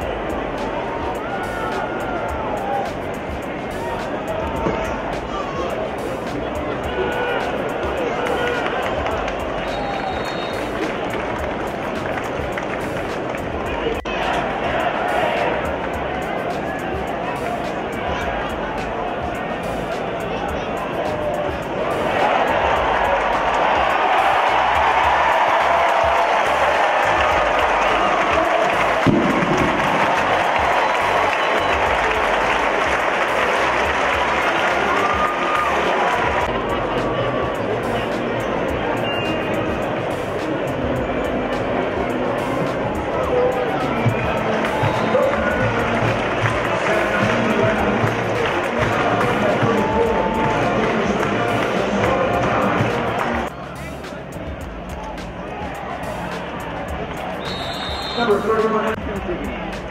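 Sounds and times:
crowd cheering and applause: 0.0s - 59.9s
stadium crowd hubbub: 0.0s - 59.9s.

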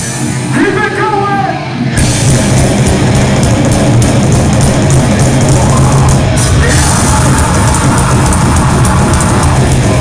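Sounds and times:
distorted guitar: 0.0s - 10.0s
fast drums and cymbals: 2.0s - 10.0s.

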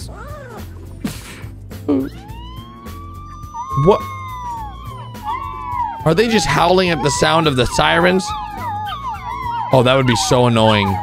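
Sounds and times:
puppies howling: 0.0s - 0.8s, 2.1s - 11.0s.

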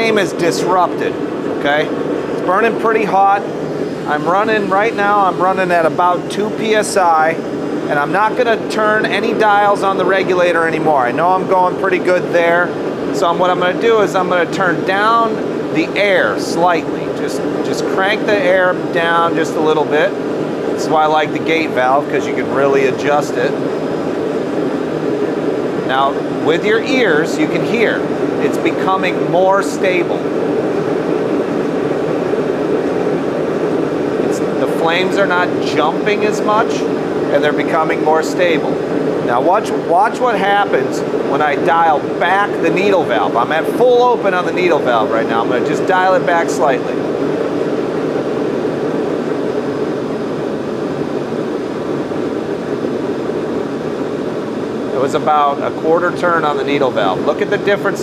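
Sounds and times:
man's voice: 0.0s - 3.5s, 4.1s - 20.1s, 20.8s - 23.5s, 25.9s - 30.2s, 34.2s - 47.0s
forge burner flame rushing: 0.0s - 58.0s.

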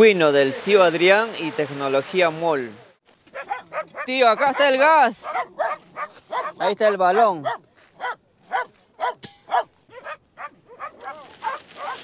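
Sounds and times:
dog yapping: 3.3s - 12.0s.

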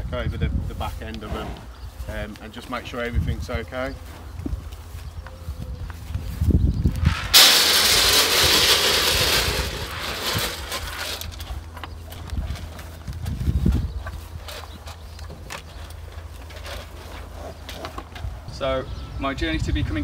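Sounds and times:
feed pellets rattling into metal trough: 7.1s - 11.5s.

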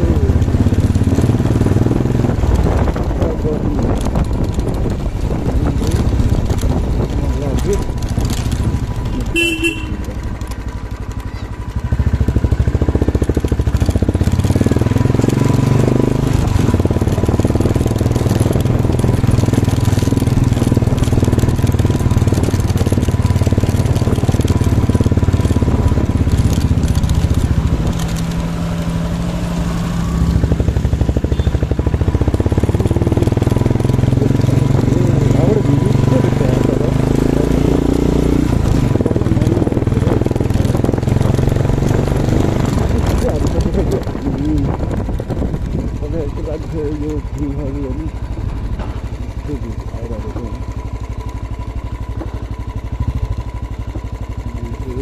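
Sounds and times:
motorcycle engine running: 0.0s - 55.0s
horn toot: 9.2s - 10.1s.

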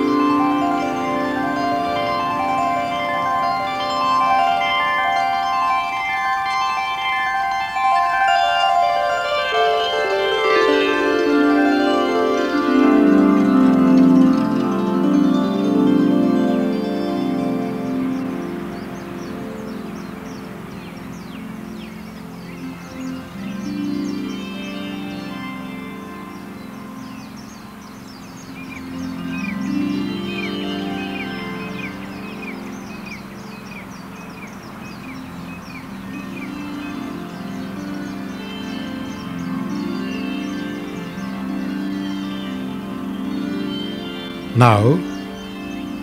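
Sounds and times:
soft ambient music: 0.0s - 46.0s
birds chirping: 18.0s - 25.4s, 44.3s - 46.0s.

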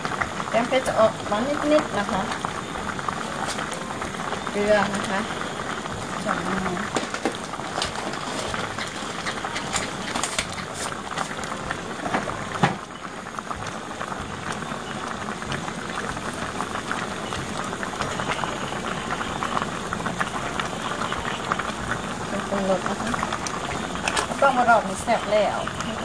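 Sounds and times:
curry boiling in a pot: 0.0s - 26.0s
popping bubbles: 0.0s - 26.0s.

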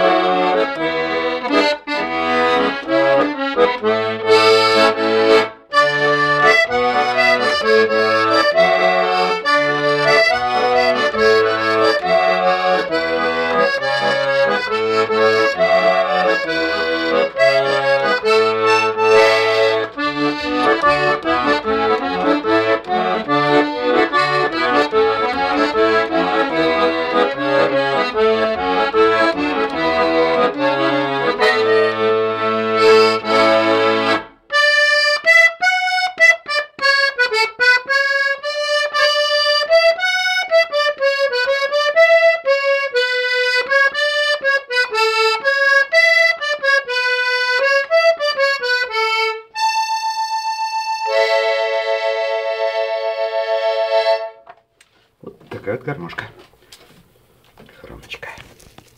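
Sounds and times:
accordion tune with bass chords: 0.0s - 57.4s.

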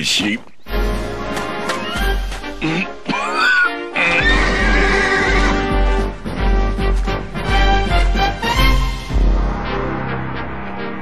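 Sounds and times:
horse whinnying: 2.7s - 5.7s.

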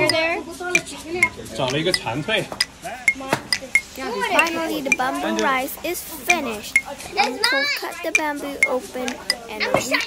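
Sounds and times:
background chatter: 0.0s - 10.0s.

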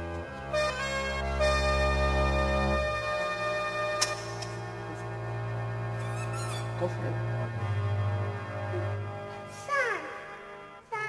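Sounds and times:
sustained keyboard chord: 0.0s - 10.9s
sharp click: 4.0s - 4.6s
high warbling squeak: 6.0s - 6.9s.

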